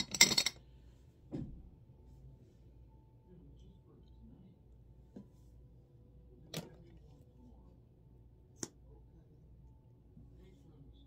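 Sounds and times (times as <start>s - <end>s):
quiet room hum: 0.0s - 11.0s.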